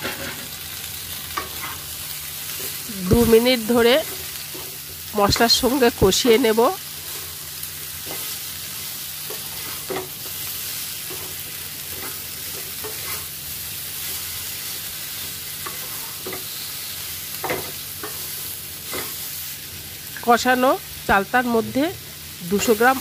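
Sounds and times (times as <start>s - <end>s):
fruit slices sizzling in pan: 0.0s - 23.0s
spatula scraping pan: 7.0s - 8.5s, 9.2s - 13.4s.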